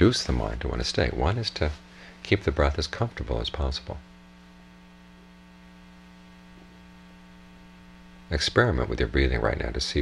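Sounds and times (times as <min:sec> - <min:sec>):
faint electrical mains hum: 0:00.0 - 0:10.0.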